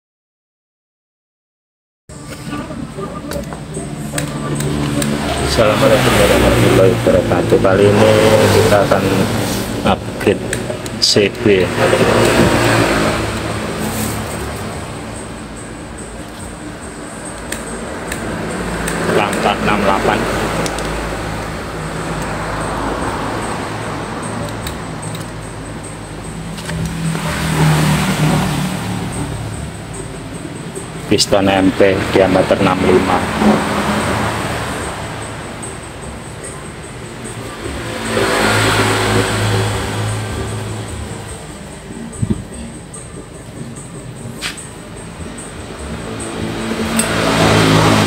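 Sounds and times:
vehicle engine running: 0:02.1 - 0:48.0.

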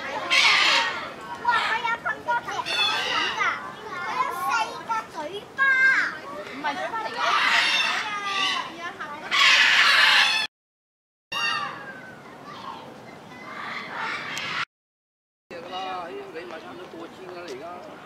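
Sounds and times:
children chattering and calling out: 0:00.0 - 0:10.5, 0:11.3 - 0:14.7
children shouting: 0:00.0 - 0:10.5, 0:11.3 - 0:14.6.

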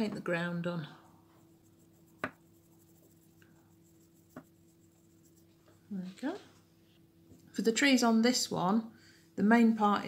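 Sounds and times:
paintbrush strokes on pebble: 0:01.0 - 0:05.8.

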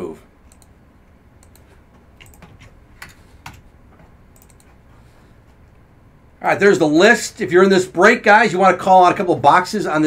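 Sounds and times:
typing on computer keyboard: 0:01.4 - 0:03.6, 0:04.4 - 0:04.7.

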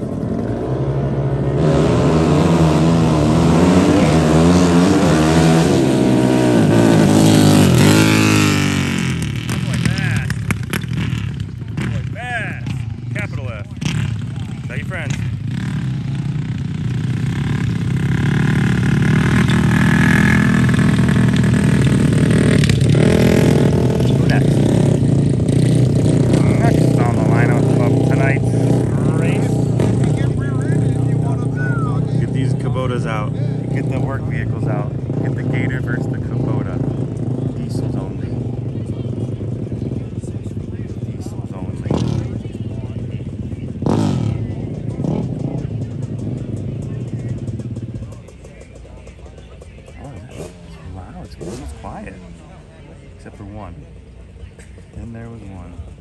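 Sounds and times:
racing engine accelerating: 0:00.0 - 0:40.4, 0:49.9 - 0:52.6
dirt bike engine running: 0:00.0 - 0:56.0.

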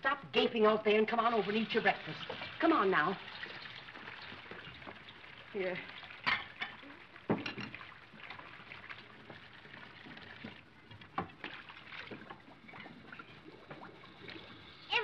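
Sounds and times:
film soundtrack hiss: 0:00.0 - 0:15.0.

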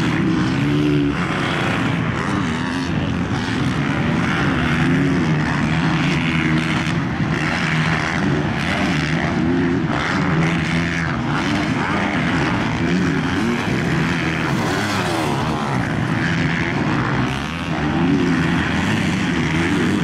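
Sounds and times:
motocross bike engines: 0:00.0 - 0:20.0.

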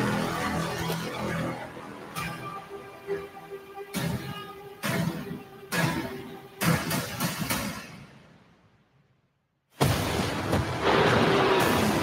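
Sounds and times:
heavy percussive hits: 0:09.8 - 0:12.0.

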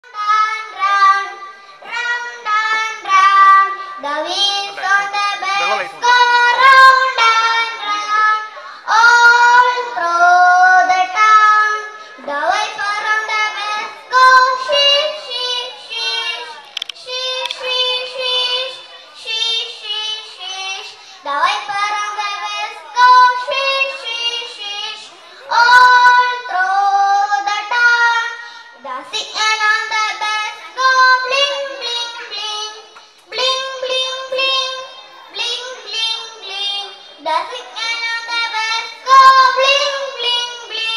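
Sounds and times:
girl singing: 0:00.0 - 0:40.9.

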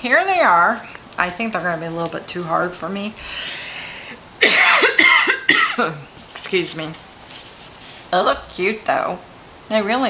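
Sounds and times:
woman coughing: 0:04.4 - 0:06.0.

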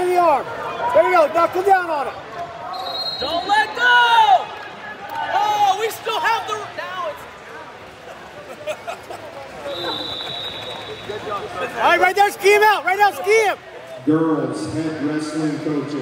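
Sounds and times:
shouting echoing in gym: 0:00.0 - 0:07.3, 0:09.6 - 0:13.7.

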